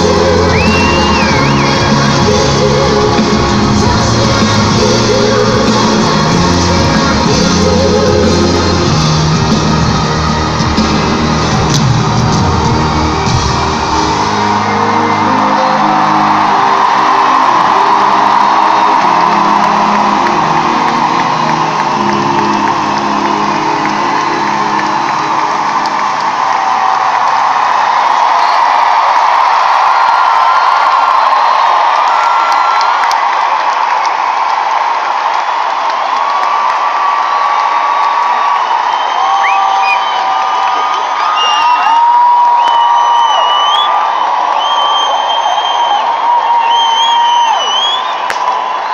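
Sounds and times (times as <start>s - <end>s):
crowd cheering and screaming: 0.0s - 48.9s
high sustained crowd cries: 0.0s - 48.9s.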